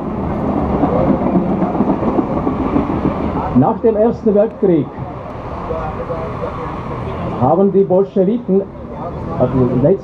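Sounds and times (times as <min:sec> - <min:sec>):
heavy vehicle passing: 0:00.0 - 0:10.0.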